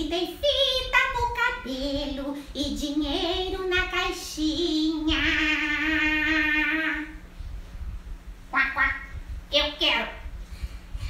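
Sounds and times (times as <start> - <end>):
woman imitating duck quacks: 8.5 - 9.1.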